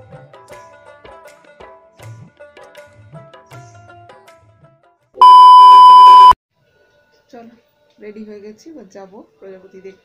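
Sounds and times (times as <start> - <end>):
tv test-tone beep: 5.2 - 6.4.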